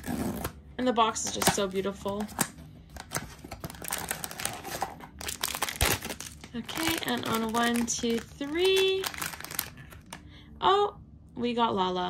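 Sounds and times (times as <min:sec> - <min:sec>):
cardboard packaging handled: 0:01.3 - 0:10.2.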